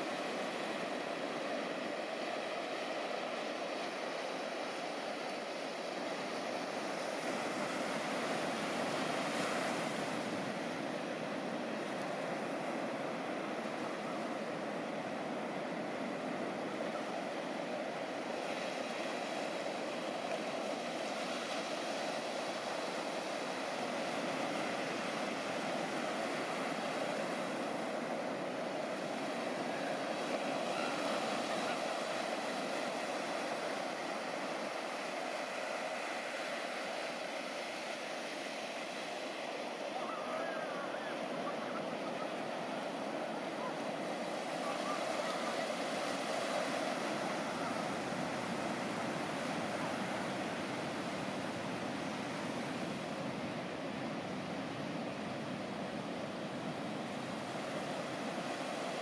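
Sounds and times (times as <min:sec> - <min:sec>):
ocean waves breaking: 0:00.0 - 0:59.0.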